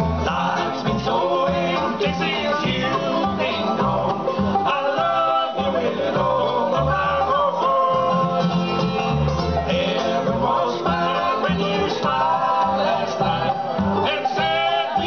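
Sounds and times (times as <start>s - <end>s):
acoustic guitar picking: 0.0s - 15.0s
picked string instruments: 0.0s - 15.0s
upright bass notes: 0.0s - 15.0s.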